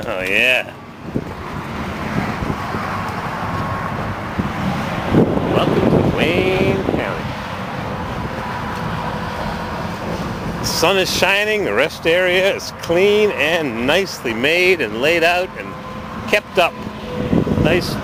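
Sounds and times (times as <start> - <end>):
wind buffeting microphone: 0.0 - 11.5, 15.6 - 18.0
road traffic rushing: 0.0 - 18.0
person's voice: 5.5 - 7.3.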